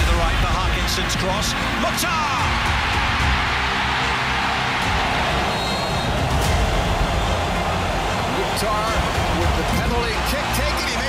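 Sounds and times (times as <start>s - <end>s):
background music with bass line: 0.0s - 11.0s
stadium crowd roar: 0.1s - 11.0s.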